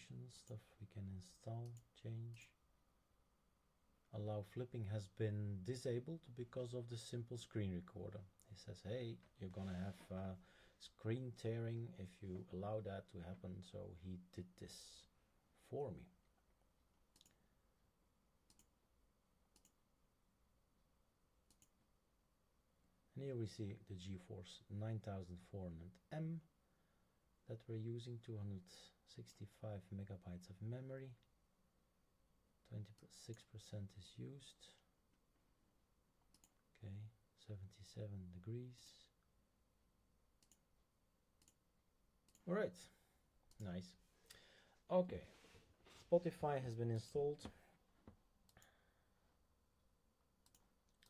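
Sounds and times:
faint computer mouse clicks: 0:18.5 - 0:18.7, 0:19.5 - 0:19.8, 0:21.5 - 0:21.8, 0:36.3 - 0:36.6, 0:40.4 - 0:40.6, 0:50.4 - 0:51.0.

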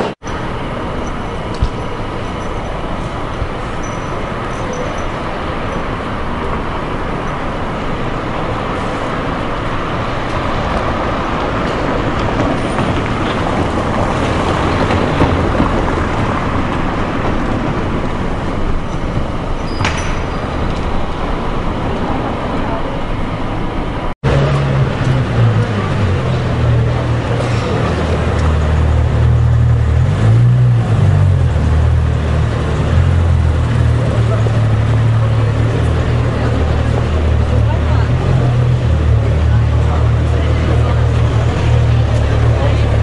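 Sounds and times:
indistinct voices: 0:00.0 - 0:43.0
low engine hum: 0:00.0 - 0:43.0
traffic noise: 0:00.0 - 0:43.0.

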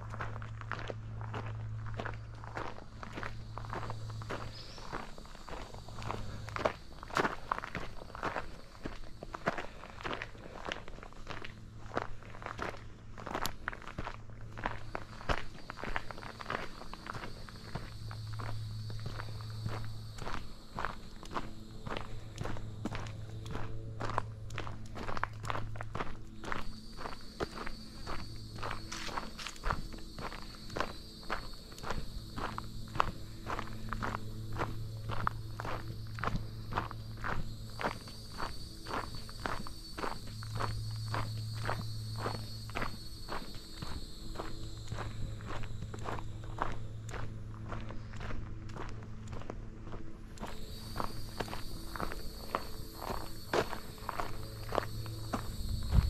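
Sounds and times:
footsteps on dirt and gravel: 0:00.0 - 0:56.0
high-pitched buzz: 0:50.4 - 0:56.0.

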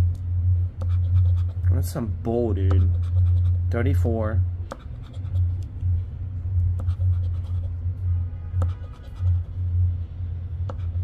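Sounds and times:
chip scratching lottery ticket: 0:00.8 - 0:01.6, 0:02.7 - 0:03.6, 0:06.8 - 0:07.7, 0:08.6 - 0:09.6.

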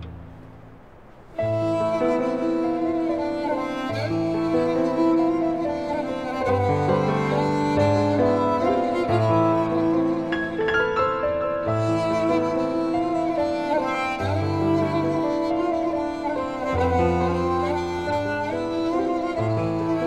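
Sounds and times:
bowed string music: 0:00.0 - 0:20.0.

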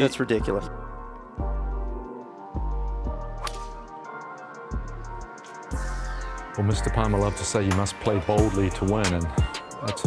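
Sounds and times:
music with deep bass beat: 0:00.4 - 0:10.0
golf club striking ball: 0:03.4 - 0:03.8.

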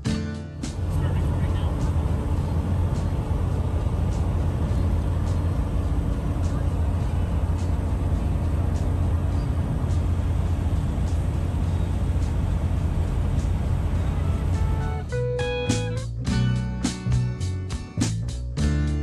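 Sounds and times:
engine and road drone: 0:00.0 - 0:19.0.

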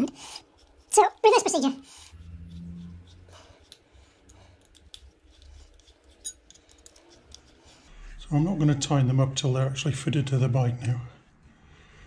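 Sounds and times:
screwdriver metallic clicks and scrapes: 0:03.0 - 0:07.7.

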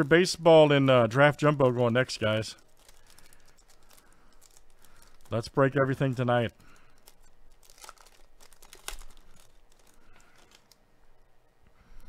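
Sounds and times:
foil wrapper crinkling and tearing: 0:00.0 - 0:11.2.

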